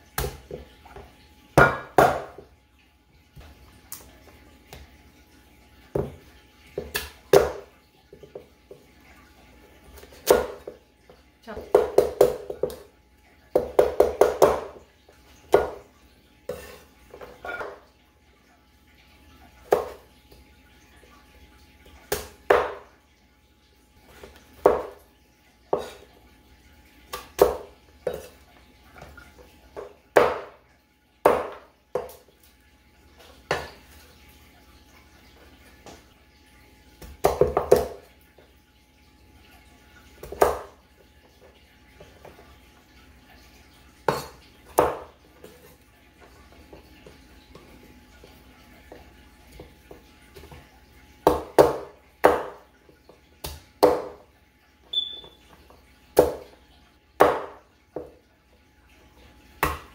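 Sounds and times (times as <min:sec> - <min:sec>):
knife chopping on wooden board: 0:01.6 - 0:02.4, 0:13.6 - 0:14.7, 0:29.8 - 0:30.6, 0:31.2 - 0:32.1, 0:51.2 - 0:52.6, 0:57.2 - 0:58.1.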